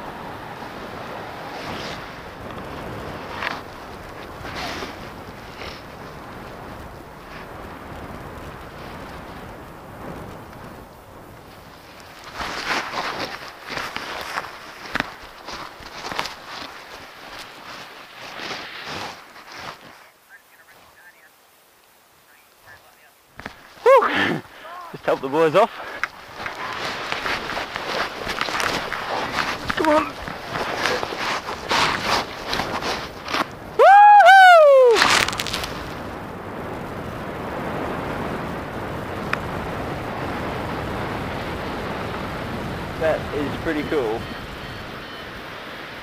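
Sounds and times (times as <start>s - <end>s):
wind rushing over microphone: 0.0s - 20.0s, 23.4s - 46.0s
high-pitched shout: 33.8s - 35.0s.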